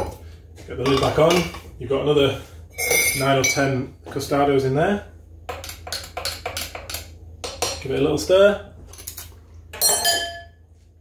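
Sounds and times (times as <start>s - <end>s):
teaspoon clinking against glass: 9.8s - 10.6s.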